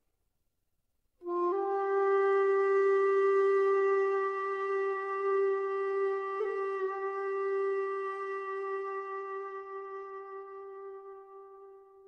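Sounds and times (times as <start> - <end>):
long flute note: 1.2 - 12.0.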